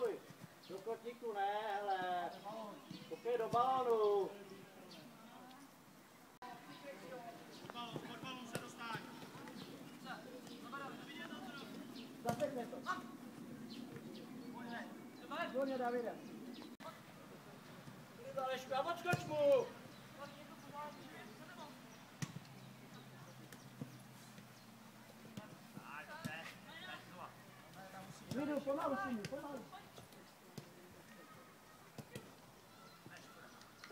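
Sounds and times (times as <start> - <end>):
outdoor background noise: 0.0 - 33.9.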